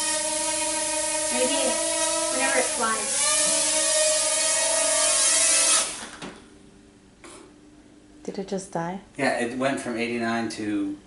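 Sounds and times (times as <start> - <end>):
drone rotors whining: 0.0 - 6.3.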